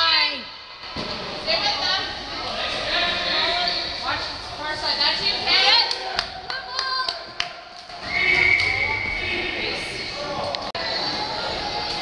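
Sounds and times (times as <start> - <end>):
voices of spectators and players: 0.0 - 12.0.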